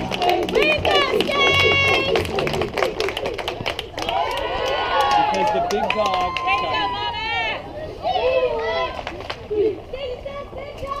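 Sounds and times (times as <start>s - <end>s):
girls calling out and chattering: 0.0s - 2.8s, 6.4s - 11.0s
sharp claps: 0.0s - 4.4s.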